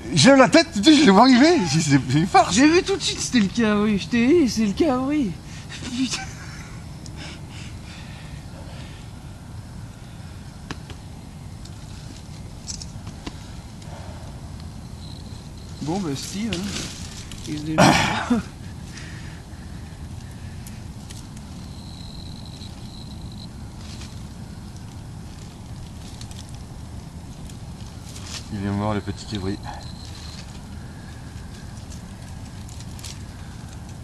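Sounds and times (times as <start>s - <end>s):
dry brush crackling: 10.7s - 34.0s
small objects clicking and rustling: 11.6s - 13.4s.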